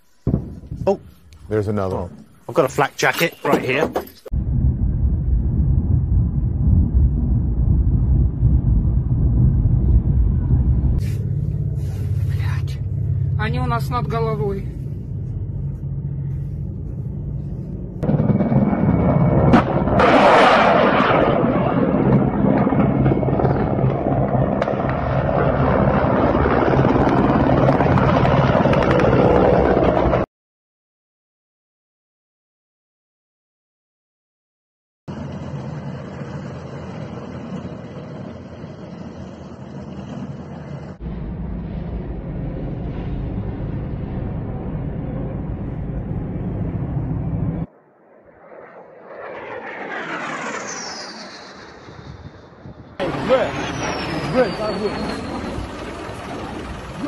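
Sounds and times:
helicopters flying low: 4.4 - 30.3, 35.1 - 57.0
low droning music: 11.1 - 19.7.

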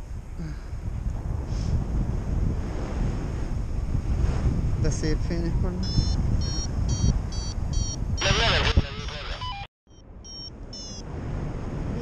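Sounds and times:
wind on microphone: 0.0 - 9.4, 11.0 - 12.0
variometer beeping: 5.8 - 11.0.

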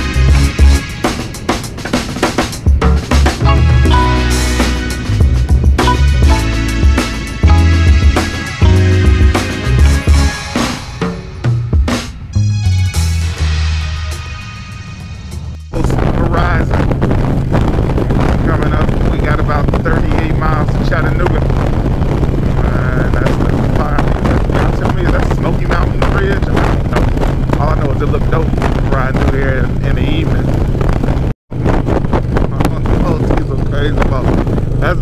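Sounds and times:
motorcycle engine drone: 0.0 - 35.0
music track: 2.5 - 15.8
wind rushing over microphone: 15.7 - 35.0.

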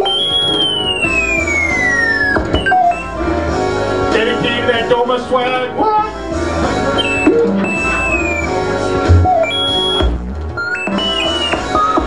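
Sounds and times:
low bass tones: 6.2 - 11.5
wind instrument sliding notes: 6.9 - 10.1.

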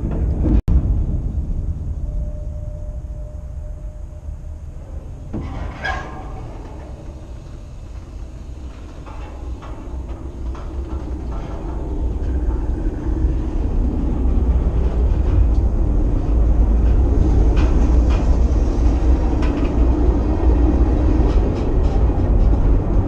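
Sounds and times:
freight train wheels rumbling: 0.0 - 23.0.

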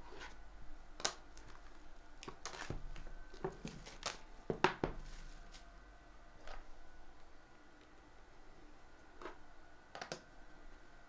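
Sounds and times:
plastic shrink wrap tearing: 1.4 - 4.2.

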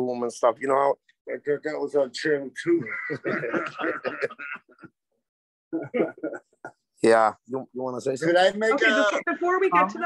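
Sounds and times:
speech over video call: 0.0 - 10.0.

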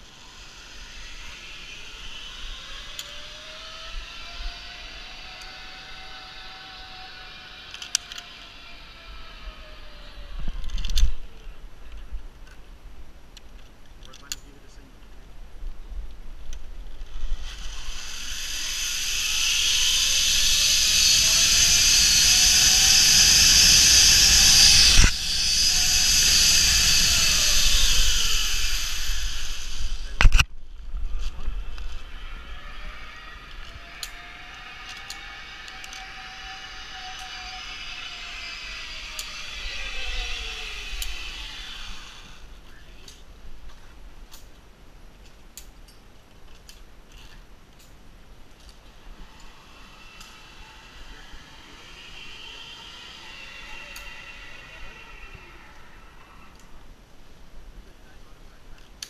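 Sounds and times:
zip-line pulleys whining on cable: 0.0 - 11.8, 16.9 - 43.2, 48.5 - 57.2.

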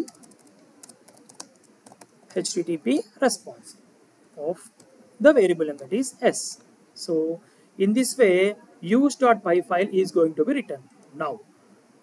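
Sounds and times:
faint keyboard keystrokes: 0.0 - 2.4.

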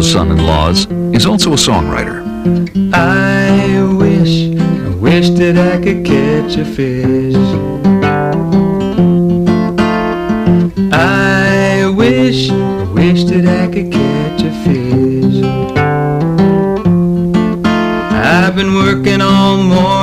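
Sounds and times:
acoustic guitar strumming: 0.0 - 20.0
country song: 0.0 - 20.0.

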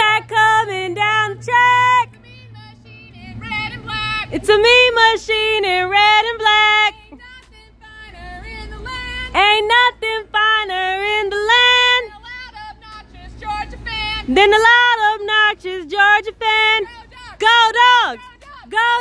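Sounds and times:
women singing call-and-response chant: 0.0 - 19.0.

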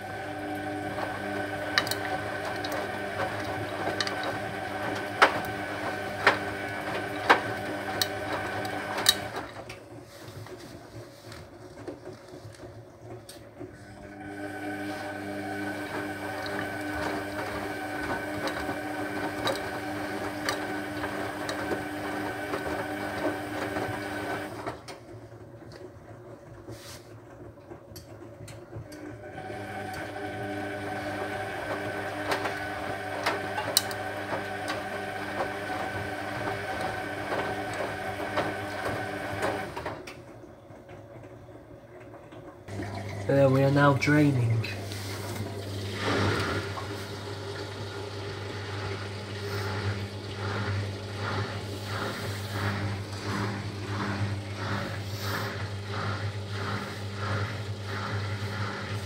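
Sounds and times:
washing machine motor whine: 0.0 - 59.0.

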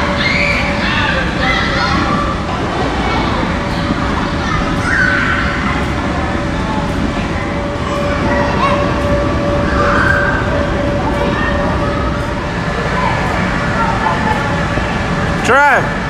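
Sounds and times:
constant hum: 0.0 - 16.0
distant indistinct voices: 0.0 - 16.0.

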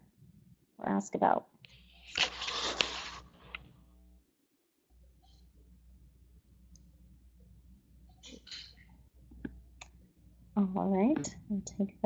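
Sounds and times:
short rustle: 2.0 - 3.6
faint low hum: 4.9 - 12.0.

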